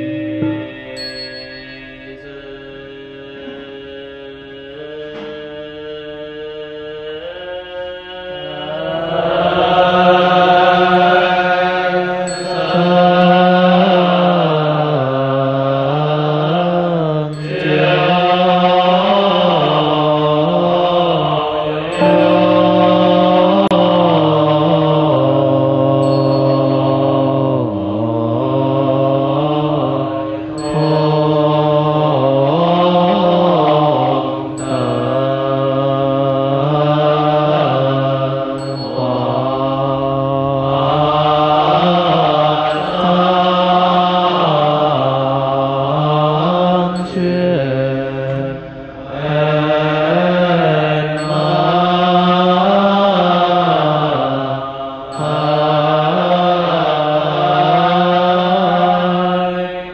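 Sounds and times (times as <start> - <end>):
monks chanting in unison: 0.0 - 59.9.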